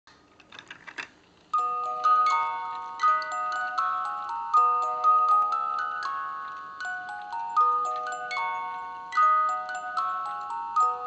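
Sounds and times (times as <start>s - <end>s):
music box tune: 1.5s - 11.0s.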